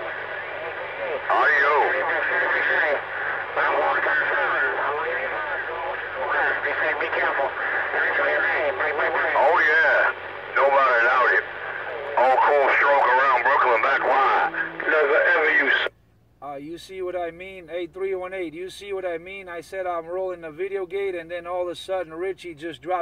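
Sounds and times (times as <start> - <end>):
distorted man's voice over radio: 0.0 - 15.9
low hum: 0.0 - 16.4.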